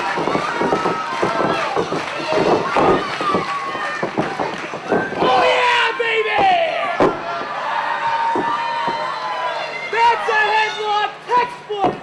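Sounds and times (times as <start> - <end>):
crowd shouting and yelling: 0.0 - 12.0.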